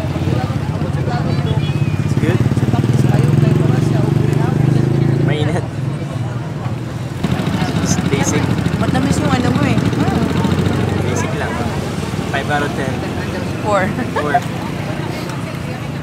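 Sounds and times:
people talking: 0:00.0 - 0:16.0
vehicle engine running: 0:00.0 - 0:16.0.

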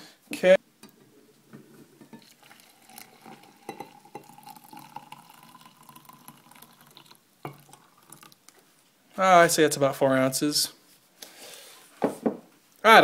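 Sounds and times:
water pouring into glass: 0:02.0 - 0:08.5.

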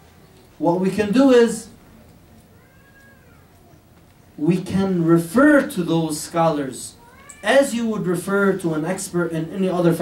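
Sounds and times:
faint meow-like call: 0:02.5 - 0:03.8, 0:07.0 - 0:07.6.

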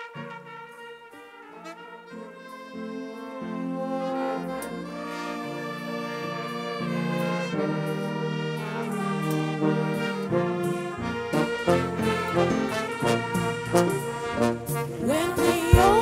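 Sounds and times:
brass melody: 0:00.0 - 0:16.0
live band playing: 0:02.1 - 0:16.0
drum hits: 0:15.6 - 0:16.0.

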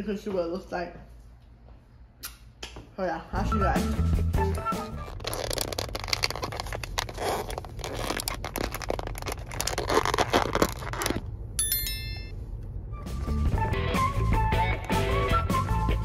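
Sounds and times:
low background music: 0:03.3 - 0:06.6, 0:12.8 - 0:16.0
plastic container lid crackling: 0:04.9 - 0:11.2.

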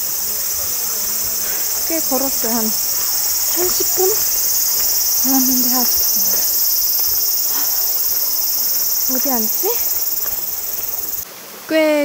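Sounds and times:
cicadas droning: 0:00.0 - 0:11.9.

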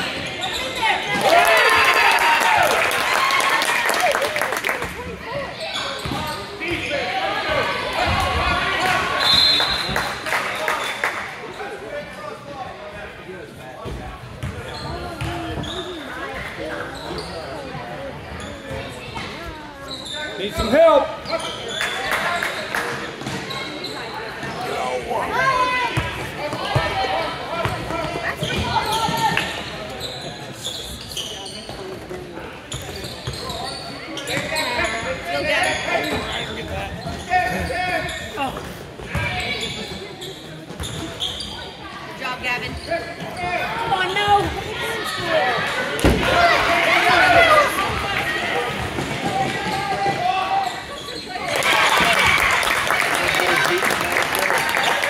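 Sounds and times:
voices calling out in a hall: 0:00.0 - 0:55.0.

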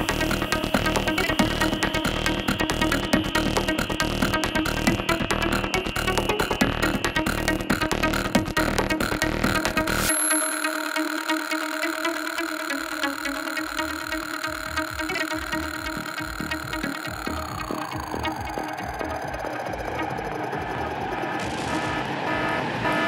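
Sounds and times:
synth tone sliding down in pitch: 0:00.0 - 0:21.5
sustained synth tones: 0:00.0 - 0:23.0.

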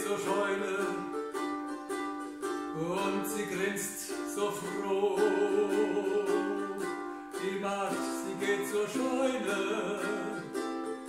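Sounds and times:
person singing: 0:00.0 - 0:11.0
ukulele strumming chords: 0:00.0 - 0:11.0.

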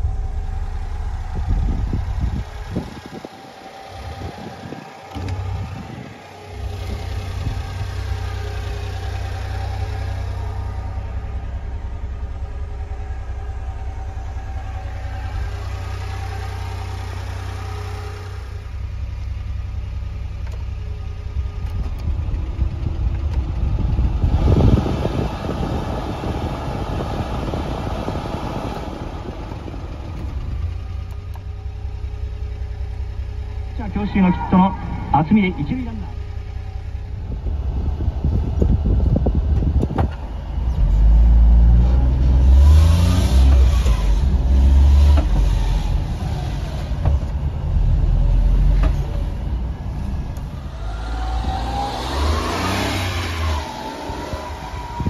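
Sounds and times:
van engine idling: 0:00.0 - 0:55.0.

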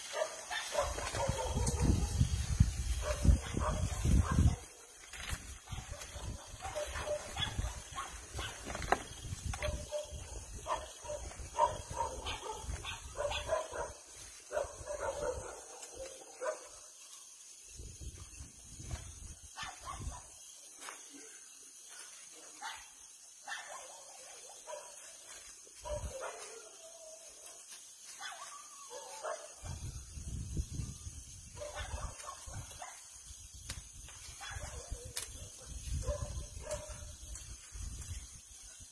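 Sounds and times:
dogs barking: 0:00.0 - 0:02.3, 0:03.0 - 0:05.0, 0:05.6 - 0:08.7, 0:09.6 - 0:16.9, 0:19.5 - 0:20.3, 0:22.6 - 0:25.1, 0:25.8 - 0:26.9, 0:28.2 - 0:29.8, 0:31.6 - 0:33.1, 0:34.4 - 0:37.2.

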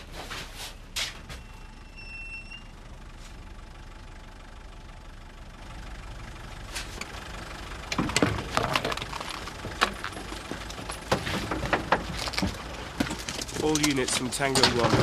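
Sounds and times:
vehicle engine idling: 0:00.0 - 0:15.0.

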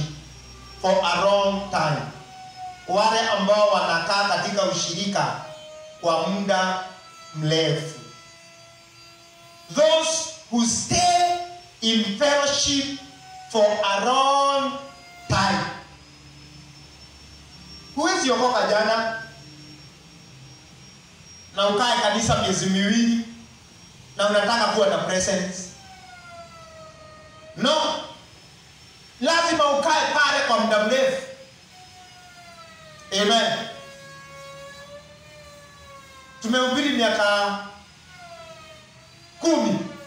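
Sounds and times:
faint steady hum: 0:00.0 - 0:40.0
held pitched tone: 0:00.0 - 0:40.0
thin high whine: 0:00.0 - 0:40.0.

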